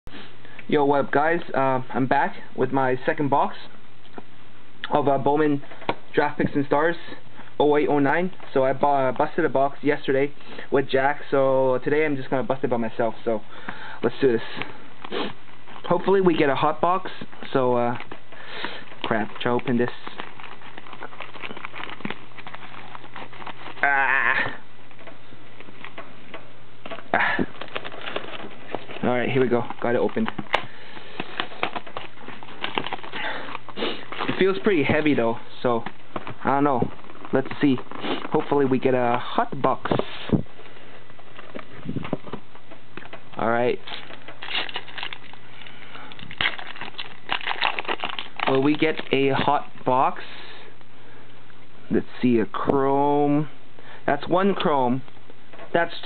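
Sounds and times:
steady low hum: 0.1s - 56.0s
shrink wrap crinkling: 12.2s - 50.9s
person grunting ah: 23.8s - 24.6s.

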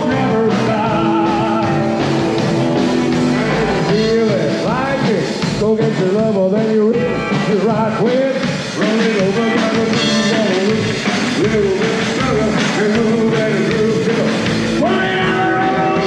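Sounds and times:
man singing: 0.0s - 2.3s, 3.3s - 16.0s
upright double bass: 0.0s - 7.9s
drum kit: 0.0s - 16.0s
electric guitar: 0.0s - 16.0s.

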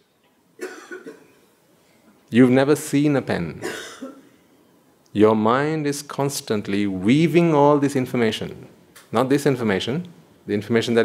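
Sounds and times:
person coughing: 0.6s - 1.5s, 3.6s - 4.3s.

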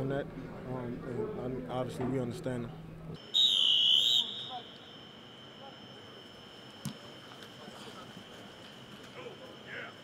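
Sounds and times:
sports whistle blast: 3.2s - 5.0s
faint steady high tone: 3.2s - 10.0s.

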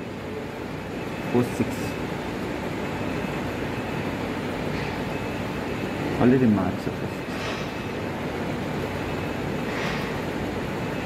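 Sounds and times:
steady background rush and rumble: 0.0s - 11.0s.

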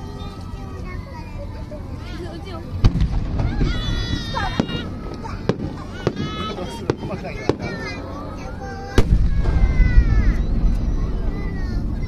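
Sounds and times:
firework boom: 2.8s - 4.0s, 9.0s - 12.0s
firework cracks: 2.8s - 7.9s, 9.0s - 12.0s
deep rumble: 9.0s - 12.0s.

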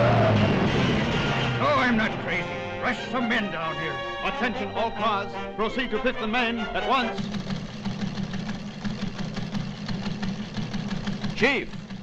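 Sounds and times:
ticker machine clattering: 7.0s - 12.0s.

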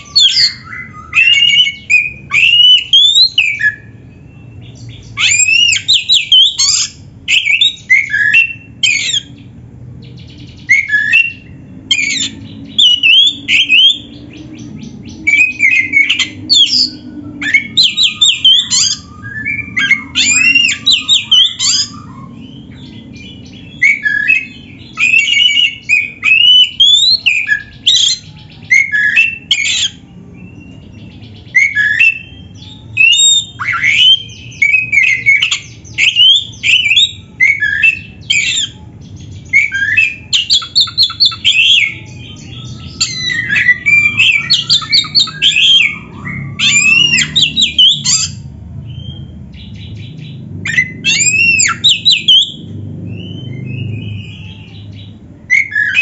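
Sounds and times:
bird singing whistles and trills: 0.0s - 56.0s.

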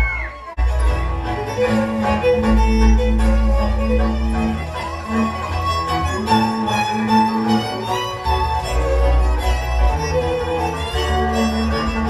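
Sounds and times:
bowed bass notes: 0.0s - 12.0s
fiddle melody: 0.0s - 12.0s.

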